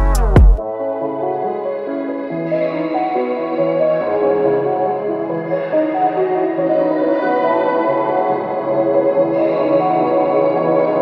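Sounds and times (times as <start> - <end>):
slow ambient music: 0.0 - 11.0.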